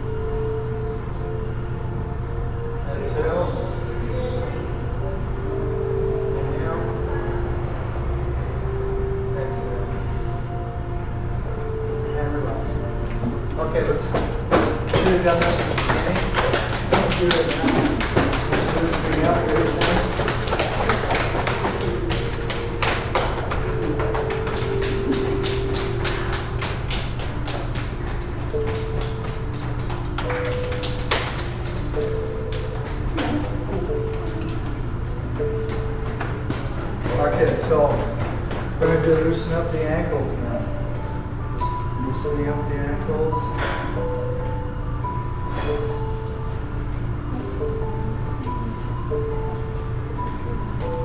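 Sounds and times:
slow instrumental music: 0:00.0 - 0:51.0.

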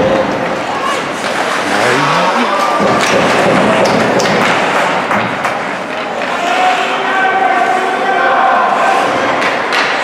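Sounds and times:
skates scraping ice: 0:00.2 - 0:10.0
sticks and puck clattering: 0:00.3 - 0:08.0, 0:08.8 - 0:10.0
sharp knocks: 0:02.7 - 0:05.5.

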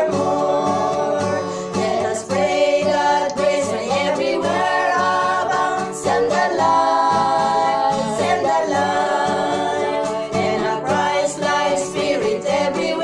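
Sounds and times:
strummed acoustic guitar: 0:00.0 - 0:13.0
women singing a hymn: 0:00.0 - 0:13.0.

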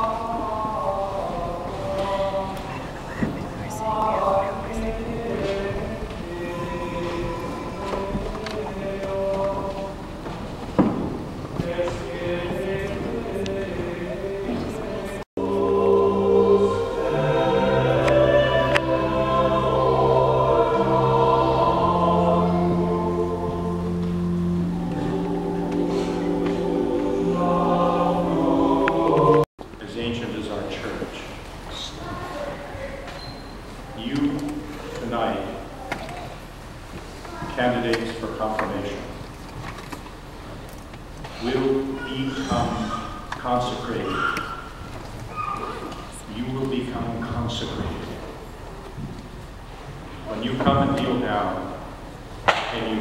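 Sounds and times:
choir singing held chords: 0:00.0 - 0:29.5, 0:41.2 - 0:48.7
pipe organ chords: 0:15.4 - 0:29.5.

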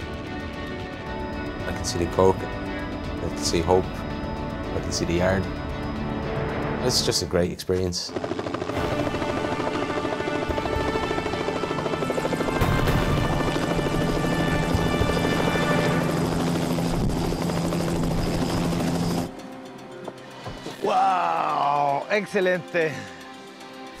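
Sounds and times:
helicopter rotor and engine: 0:00.0 - 0:24.0.

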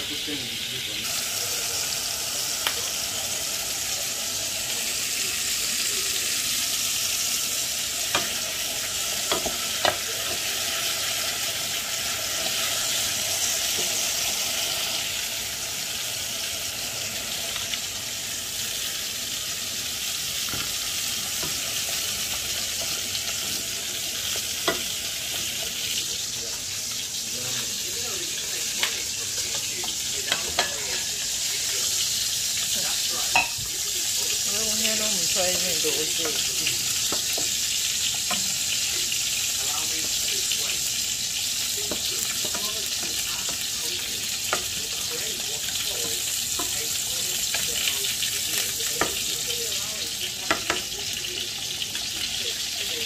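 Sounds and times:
food sizzling in a pot: 0:00.0 - 0:53.0.

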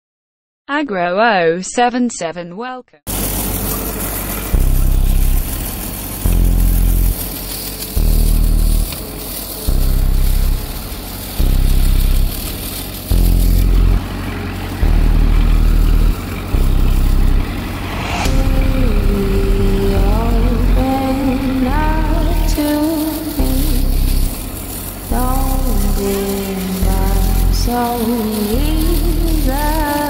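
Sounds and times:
tractor diesel engine running: 0:03.1 - 0:30.0
music with singing voice: 0:18.0 - 0:30.0.

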